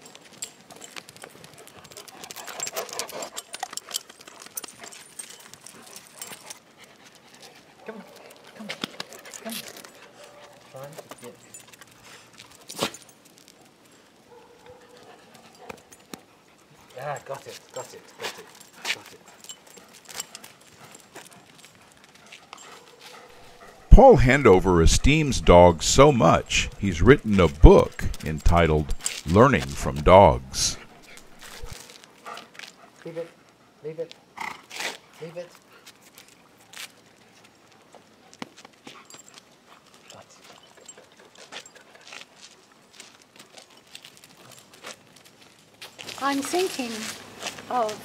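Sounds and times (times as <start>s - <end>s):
dog paws scuffing pavement: 0.0s - 23.9s, 34.6s - 48.0s
narrator speaking: 23.9s - 31.8s.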